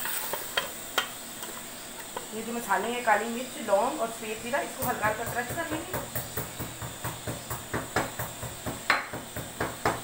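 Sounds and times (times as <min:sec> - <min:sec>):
wooden spoon knocking on metal pot: 0:04.8 - 0:10.0.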